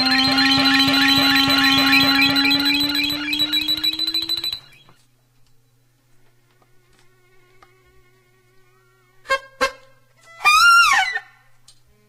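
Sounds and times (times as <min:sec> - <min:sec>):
reedy high note sliding down: 0:00.0 - 0:05.0
faint steady hum: 0:00.0 - 0:12.0.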